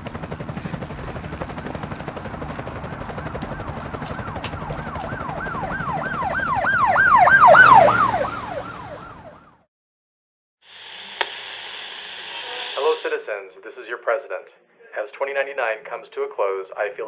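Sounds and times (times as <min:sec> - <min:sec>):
rapid low chopping pulse: 0:00.0 - 0:08.5
siren yelping: 0:00.7 - 0:09.7.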